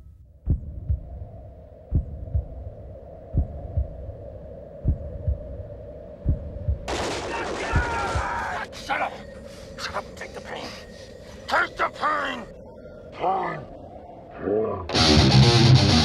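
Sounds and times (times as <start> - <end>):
steady low hum: 0.0 - 14.9
heartbeat-like double thump: 0.4 - 1.2, 1.9 - 2.7, 3.3 - 4.1, 4.8 - 5.5, 6.2 - 6.9.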